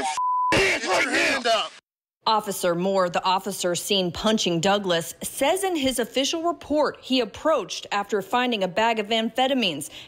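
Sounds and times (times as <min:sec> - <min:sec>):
censor bleep tone: 0:00.0 - 0:00.6
man shouting: 0:00.0 - 0:01.8.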